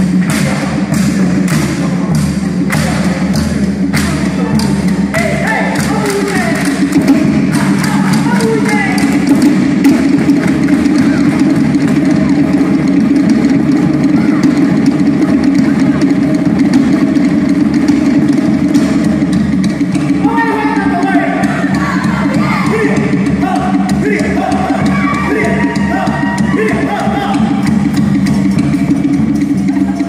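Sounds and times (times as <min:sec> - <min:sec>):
fast drumbeats: 0:00.0 - 0:30.0.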